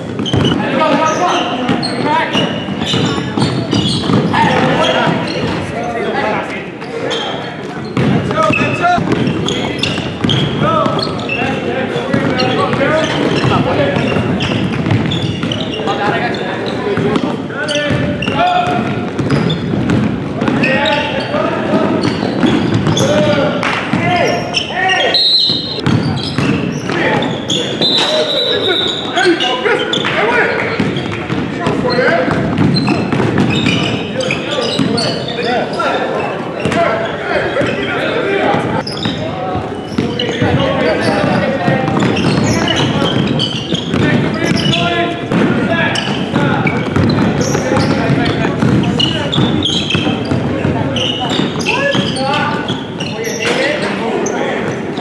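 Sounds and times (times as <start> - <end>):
indistinct voices: 0.0 - 55.0
basketball bouncing on hardwood: 0.1 - 0.6, 2.8 - 5.5, 8.0 - 11.1, 12.1 - 15.6, 17.9 - 20.7, 21.9 - 23.3, 25.5 - 27.0, 30.8 - 34.0, 39.9 - 52.2.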